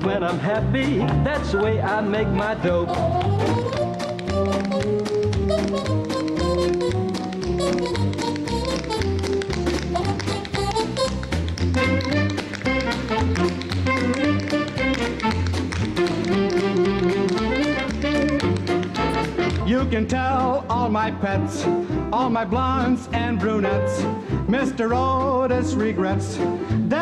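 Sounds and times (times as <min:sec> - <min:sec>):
tap shoes striking stage floor: 0:00.0 - 0:21.0
big band music with saxophones: 0:00.0 - 0:27.0.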